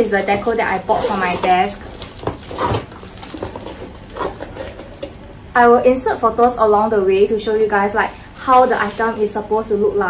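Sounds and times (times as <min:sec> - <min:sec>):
bubble wrap rustling and crinkling: 0:00.0 - 0:05.4, 0:07.6 - 0:09.6.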